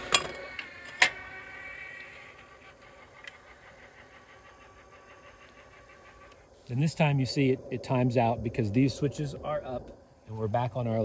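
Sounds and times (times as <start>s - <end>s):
electric motor whine: 0.0s - 7.9s.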